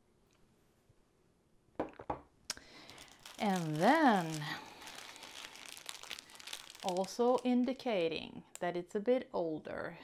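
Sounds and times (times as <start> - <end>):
plastic wrapping crinkling: 2.5 - 8.1.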